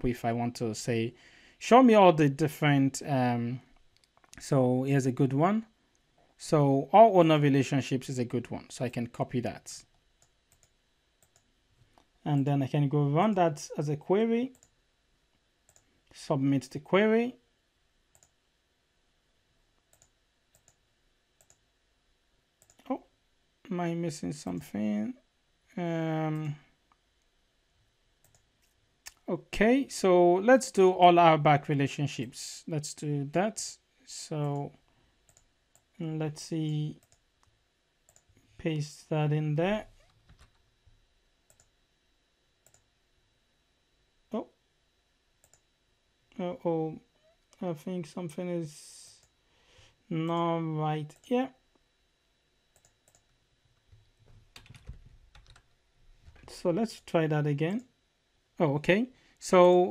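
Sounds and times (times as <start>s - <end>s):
computer mouse clicks: 10.2s - 11.5s, 15.7s - 15.9s, 18.1s - 18.4s, 19.9s - 20.8s, 21.4s - 21.6s, 22.6s - 22.9s, 28.2s - 28.5s, 35.3s - 35.9s, 38.1s - 38.4s, 41.5s - 41.7s, 42.6s - 42.9s, 45.4s - 45.6s, 52.7s - 53.3s
faint keyboard keystrokes: 53.9s - 56.5s.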